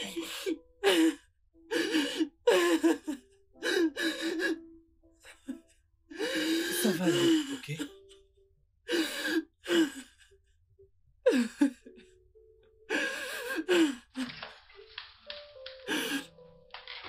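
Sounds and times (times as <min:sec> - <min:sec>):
woman crying and sobbing: 0:00.0 - 0:08.2, 0:08.9 - 0:10.4, 0:11.3 - 0:12.2, 0:12.9 - 0:14.6, 0:15.3 - 0:16.4.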